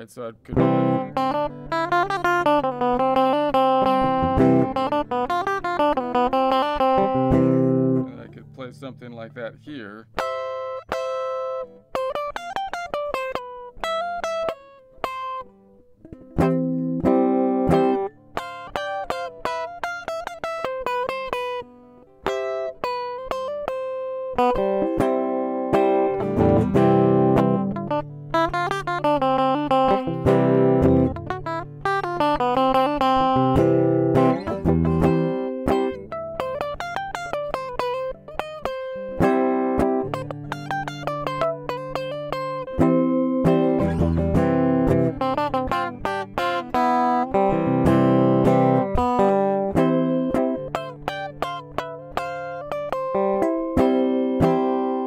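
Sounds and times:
electric guitar playing: 0.0 - 55.0.

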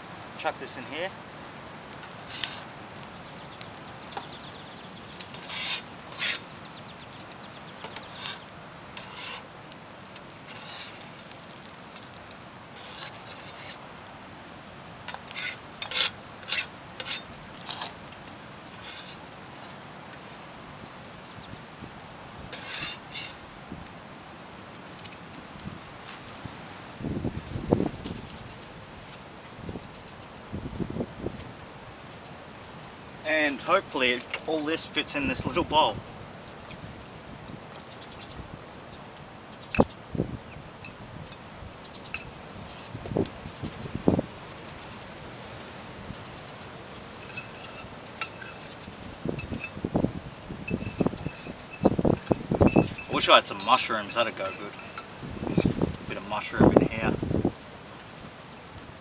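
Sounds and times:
metal spatula scraping griddle: 2.2 - 2.7, 5.3 - 6.5, 8.0 - 9.4, 10.4 - 11.6, 12.8 - 13.8, 15.1 - 17.9, 18.8 - 19.8, 22.5 - 23.4, 42.1 - 43.0, 47.2 - 48.8, 49.4 - 49.7, 50.7 - 55.7.

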